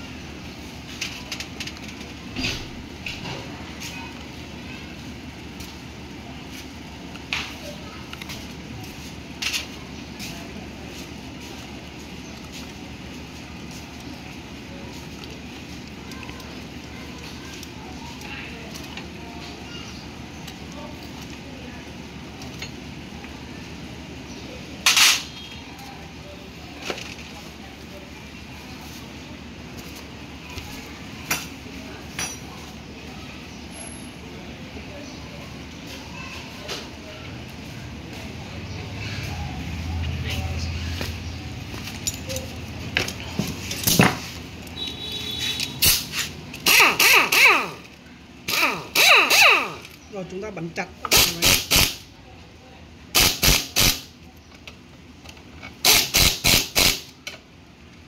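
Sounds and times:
low background hum: 0:00.0 - 0:58.0.

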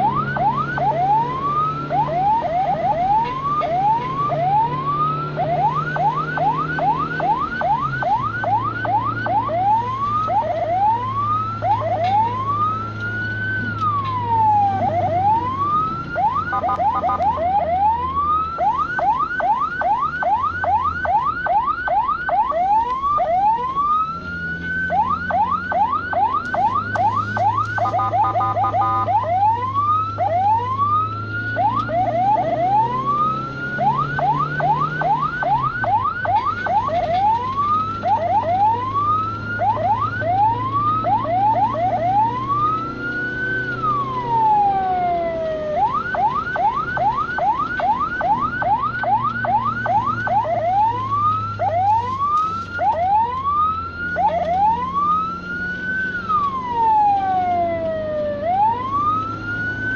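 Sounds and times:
ambulance siren yelping and wailing: 0:00.0 - 0:59.9.

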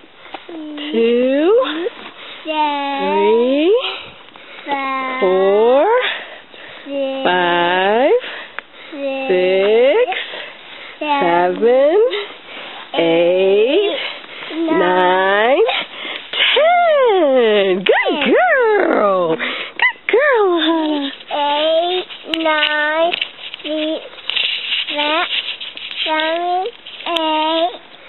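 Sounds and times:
sing-song voice calling: 0:16.5 - 0:21.0.

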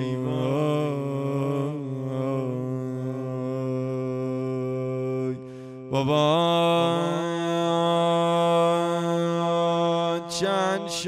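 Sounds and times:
man chanting a lament: 0:00.0 - 0:11.0.

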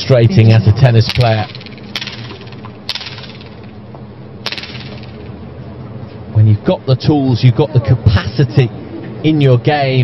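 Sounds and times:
low stadium hum: 0:00.0 - 0:10.0.

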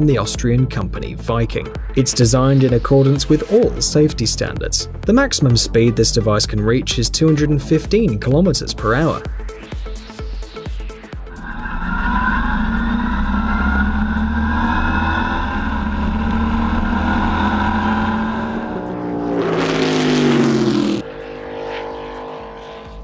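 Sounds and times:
rush of pass-by noise: 0:08.9 - 0:23.0
racing lawnmower engine: 0:11.3 - 0:23.0.

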